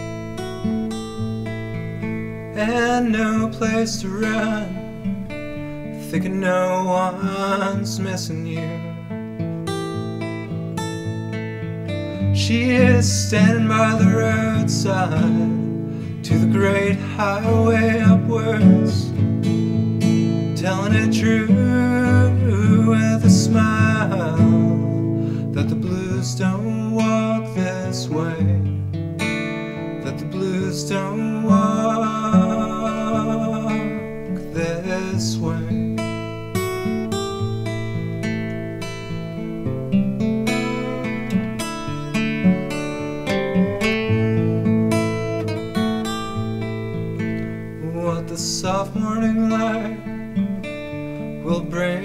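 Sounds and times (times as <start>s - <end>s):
folk song with acoustic guitar: 0.0s - 52.0s.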